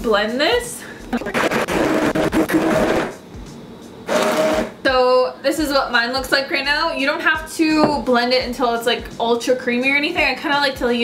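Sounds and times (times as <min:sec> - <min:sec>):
immersion blender motor whine: 0:04.1 - 0:04.8.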